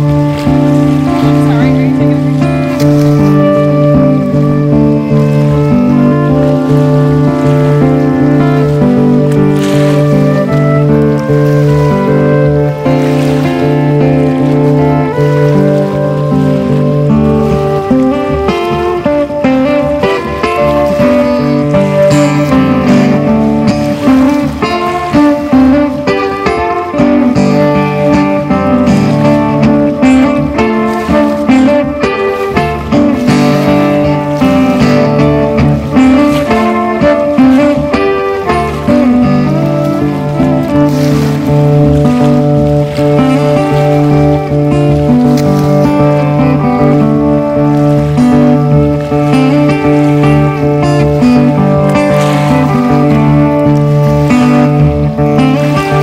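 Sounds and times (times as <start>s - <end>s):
acoustic guitar: 0.0s - 56.0s
fiddle sustained notes: 0.0s - 56.0s.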